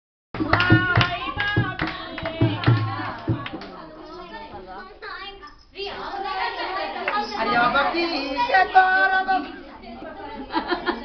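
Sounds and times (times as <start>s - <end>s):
clap-like percussive beat: 0.4s - 3.8s.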